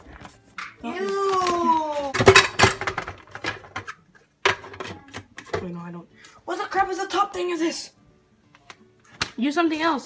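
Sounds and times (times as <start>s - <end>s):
kitchen items clicking and knocking: 0.5s - 5.9s.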